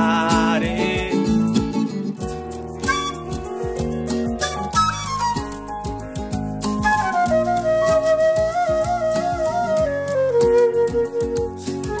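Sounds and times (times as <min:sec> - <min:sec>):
acoustic guitar plucked notes: 0:00.0 - 0:12.0
bass: 0:00.0 - 0:12.0.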